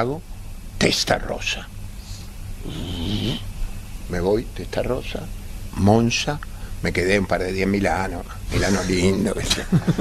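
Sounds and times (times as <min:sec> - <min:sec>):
steady low hum: 0:00.0 - 0:10.0
man's rasping vocal sound: 0:02.6 - 0:03.5.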